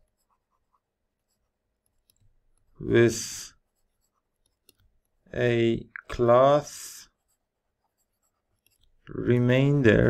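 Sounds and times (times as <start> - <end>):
stylus scratching on tablet: 0.0 - 5.4, 6.1 - 10.0.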